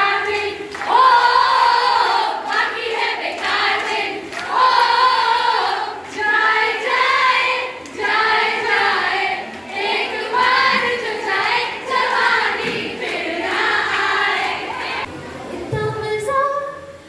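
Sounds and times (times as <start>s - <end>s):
woman singing into microphone: 15.6s - 17.0s.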